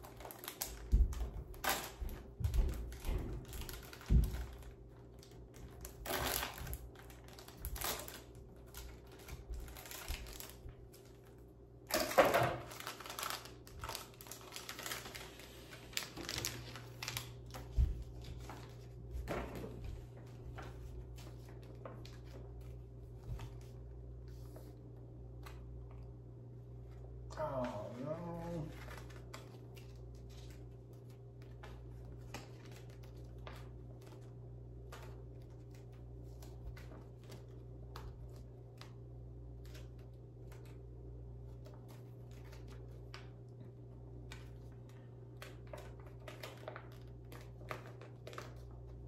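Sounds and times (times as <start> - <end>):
plastic bag crinkling: 0.0 - 19.0, 44.3 - 49.0.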